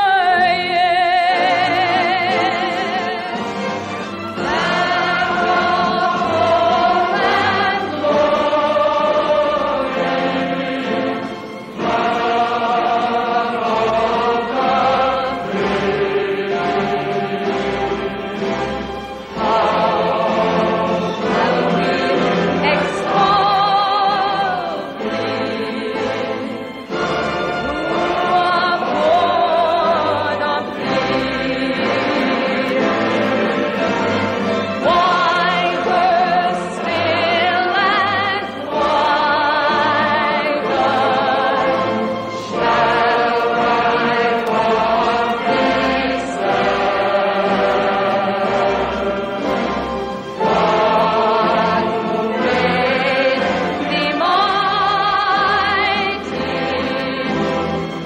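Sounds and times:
choir singing: 0.0 - 58.0
orchestra: 0.0 - 58.0.

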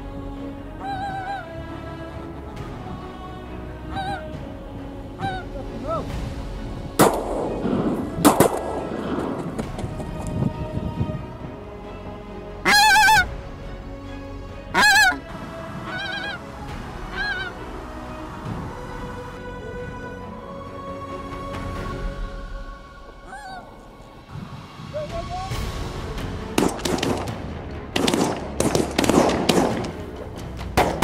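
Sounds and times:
geese honking: 0.0 - 2.5, 3.1 - 6.1, 12.1 - 13.4, 14.6 - 20.2, 23.1 - 24.1
shotgun shots: 7.0 - 9.7, 26.6 - 30.2, 30.8 - 31.0.

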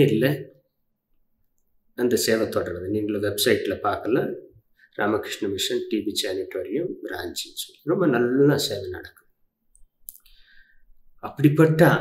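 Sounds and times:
man talking: 0.0 - 0.6, 2.0 - 9.2, 11.2 - 12.0.

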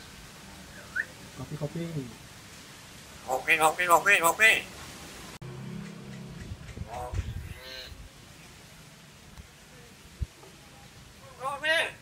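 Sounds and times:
hill myna calling: 3.2 - 4.8.

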